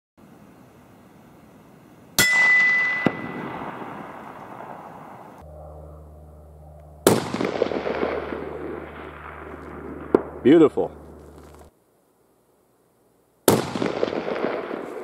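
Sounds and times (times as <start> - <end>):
steady low hum: 0.2 - 15.0
rifle shots with echo: 7.0 - 11.5, 13.5 - 15.0.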